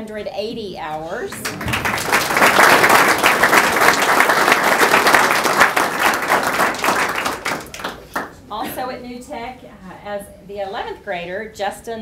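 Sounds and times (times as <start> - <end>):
group applauding: 1.3 - 8.4.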